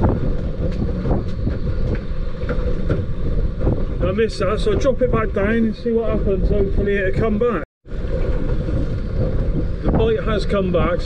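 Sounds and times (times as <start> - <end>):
choppy water around boat: 0.0 - 11.0
wind rumble on microphone: 0.0 - 11.0.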